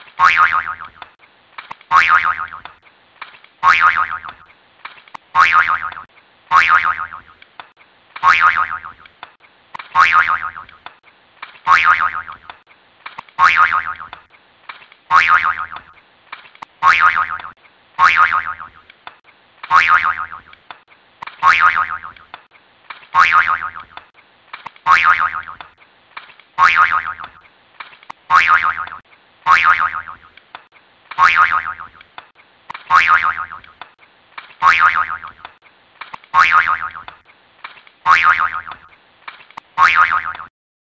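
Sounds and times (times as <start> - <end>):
cartoon spring boing: 0.2 - 1.0, 1.9 - 2.6, 10.0 - 10.7, 11.7 - 12.4, 13.4 - 14.2, 15.1 - 15.9, 16.8 - 18.8, 19.7 - 20.5, 21.4 - 22.2, 23.2 - 23.9, 24.9 - 25.6, 28.3 - 30.2, 31.2 - 32.0, 32.9 - 33.7, 34.6 - 35.4, 36.4 - 37.1, 38.1 - 38.8, 39.8 - 40.5.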